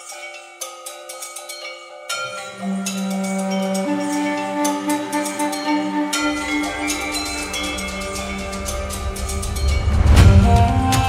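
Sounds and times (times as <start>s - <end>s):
struck bell-like notes: 0.0s - 11.0s
low steady tone: 2.7s - 11.0s.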